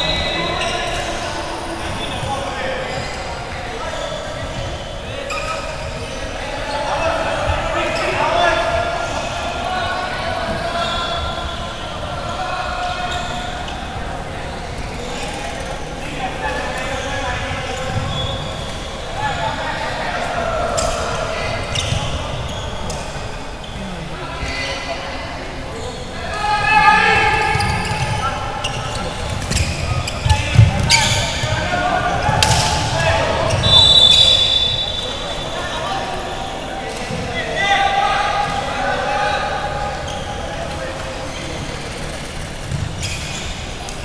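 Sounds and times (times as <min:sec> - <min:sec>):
players' voices and calls: 0:00.0 - 0:44.0.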